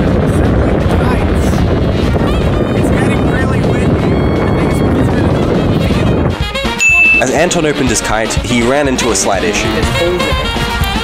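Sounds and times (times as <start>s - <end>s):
wind buffeting microphone: 0.0s - 11.0s
man speaking: 7.1s - 10.5s.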